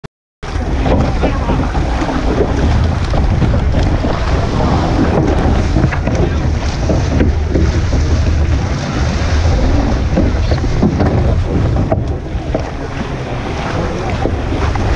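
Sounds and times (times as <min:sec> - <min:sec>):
water splashing: 0:00.4 - 0:14.9
wind buffeting microphone: 0:00.4 - 0:14.9.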